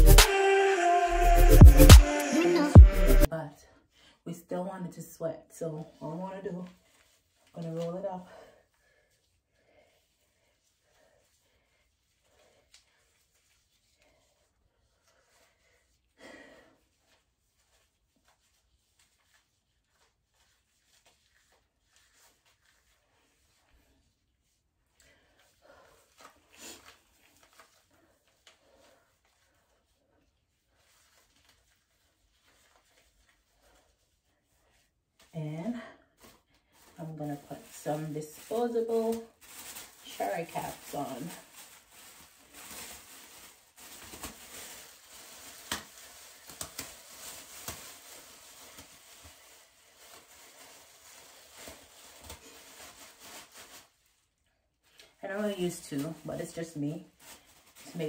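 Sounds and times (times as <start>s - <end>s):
soft vocal sound: 0.0s - 3.3s.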